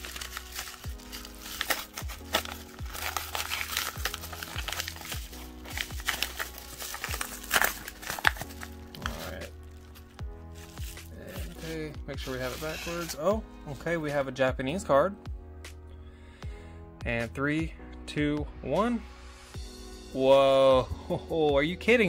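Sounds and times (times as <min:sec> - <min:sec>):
bubble mailer crinkling and tearing: 0:00.0 - 0:13.3
background music: 0:00.0 - 0:22.0.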